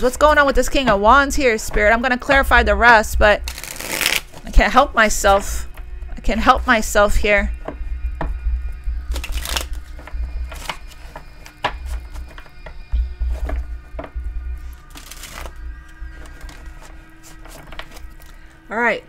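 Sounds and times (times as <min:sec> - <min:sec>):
soft background music: 0:00.0 - 0:19.0
cards being shuffled: 0:03.5 - 0:04.5, 0:09.1 - 0:12.6, 0:14.8 - 0:15.6, 0:16.2 - 0:18.4.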